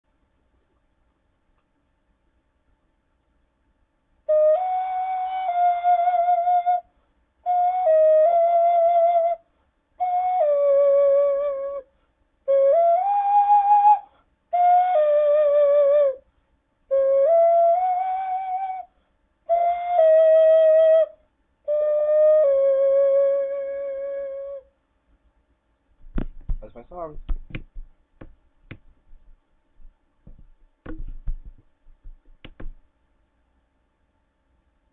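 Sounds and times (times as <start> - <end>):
ocarina playing slow melody: 4.3 - 9.4, 10.0 - 11.9, 12.5 - 16.2, 16.9 - 18.9, 19.5 - 24.7.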